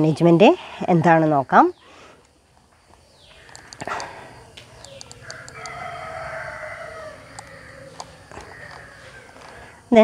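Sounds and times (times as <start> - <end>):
light ticks: 2.2 - 5.8
long animal call: 3.3 - 9.8.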